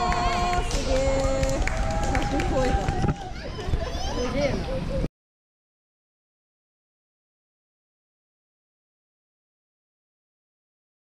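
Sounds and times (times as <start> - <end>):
indistinct voices holding notes: 0.0 - 3.0.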